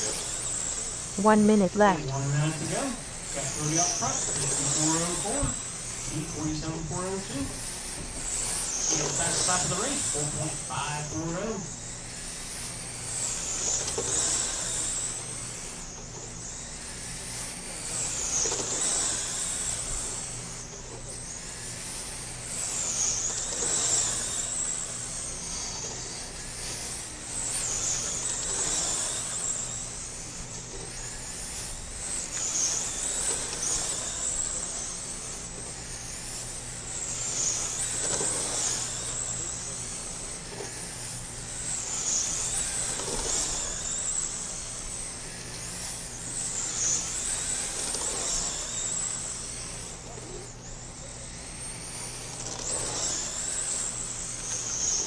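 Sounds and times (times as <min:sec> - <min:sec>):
rc car motor whine: 0:00.0 - 0:55.0.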